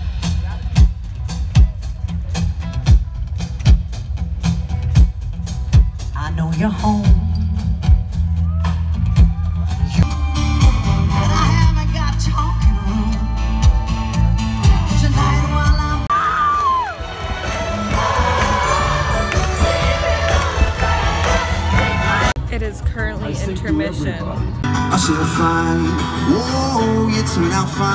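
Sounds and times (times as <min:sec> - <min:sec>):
live concert music over loudspeakers: 0:00.0 - 0:27.9
crowd whooping: 0:08.4 - 0:11.4, 0:12.8 - 0:22.3.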